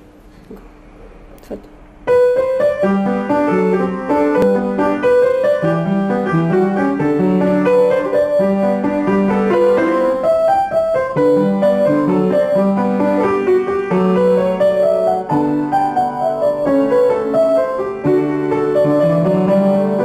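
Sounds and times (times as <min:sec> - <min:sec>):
upright piano playing: 0:02.0 - 0:20.0.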